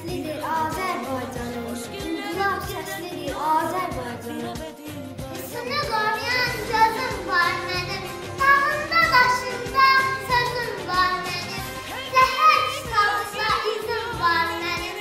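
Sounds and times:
high voice singing with vibrato: 0.0 - 15.0
instrumental accompaniment: 0.0 - 15.0.

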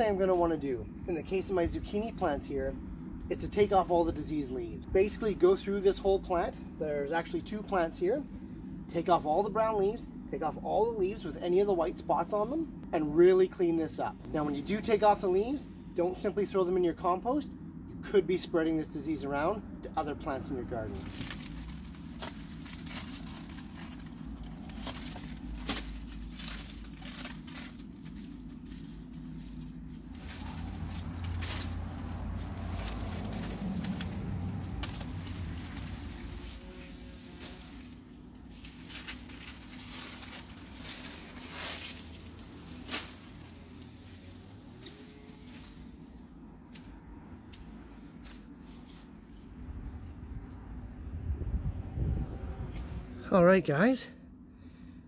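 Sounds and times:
dry leaves rustling and crumpling: 0.0 - 17.2, 18.4 - 51.2
leaves snapping off: 20.9 - 50.1.

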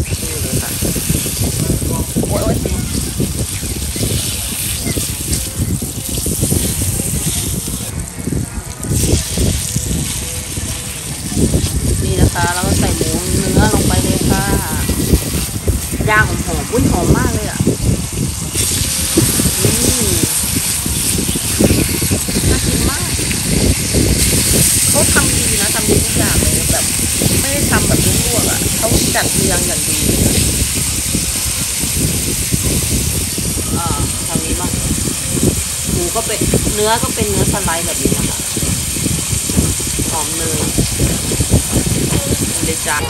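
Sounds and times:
faint background voices: 0.0 - 17.8
meat sizzling in butter: 0.0 - 43.0.

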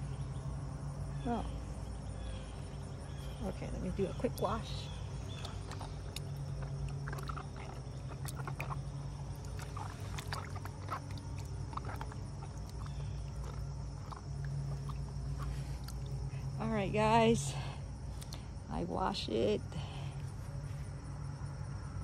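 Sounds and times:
low mechanical hum: 0.0 - 22.0.

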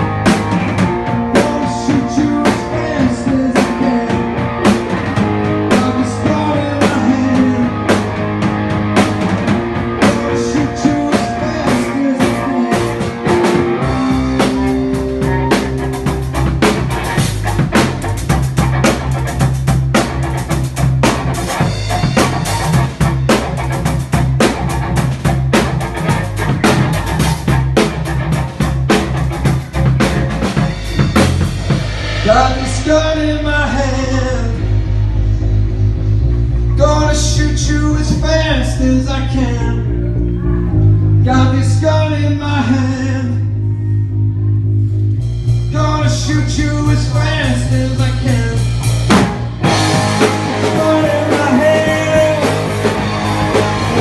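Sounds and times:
drum kit: 0.0 - 42.0, 44.5 - 54.0
electric bass line: 0.0 - 54.0
electric guitars: 0.0 - 54.0.

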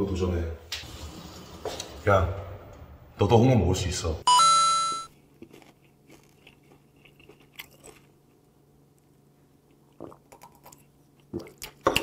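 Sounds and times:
man sipping and swallowing: 9.7 - 11.8.

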